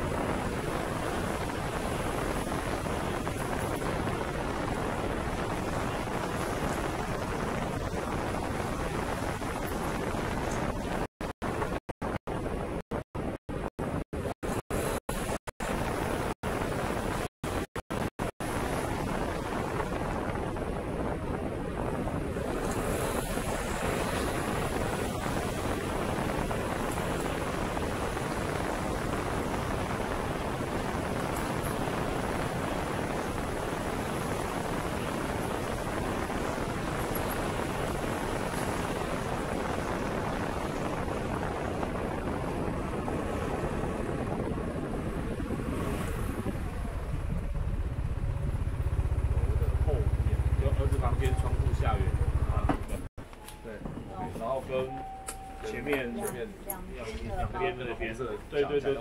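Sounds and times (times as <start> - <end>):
wind rushing over microphone: 0.0 - 53.1
road noise: 14.2 - 59.0.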